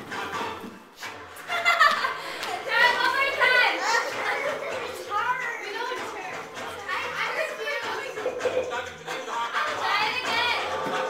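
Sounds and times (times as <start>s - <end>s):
young girls chattering: 2.2s - 8.9s, 9.7s - 10.8s.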